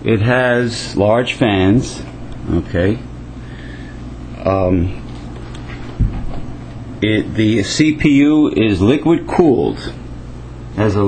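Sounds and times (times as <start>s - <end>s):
computer cooling fans humming: 0.0s - 11.0s
dull thump: 6.0s - 6.5s.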